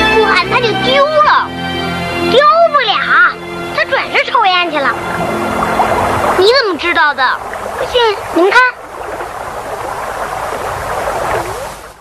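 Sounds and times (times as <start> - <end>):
high voice wordless sounds: 0.0 - 1.5, 2.3 - 5.0, 6.4 - 8.8
steady rushing noise: 4.4 - 12.0.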